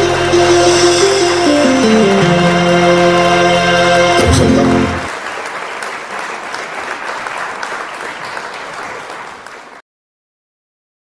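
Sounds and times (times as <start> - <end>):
audience applauding: 4.2 - 9.8.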